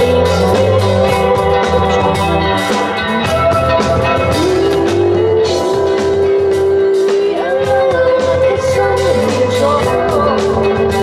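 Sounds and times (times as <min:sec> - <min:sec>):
drum kit with cymbal hits: 0:00.0 - 0:11.0
electric bass guitar: 0:00.0 - 0:11.0.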